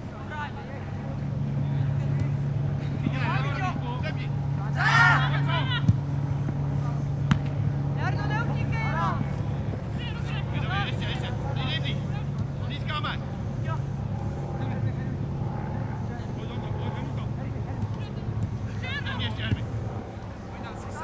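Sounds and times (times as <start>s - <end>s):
low engine-like hum: 0.0s - 21.0s
players shouting: 3.1s - 7.4s, 8.0s - 14.4s, 17.8s - 19.8s.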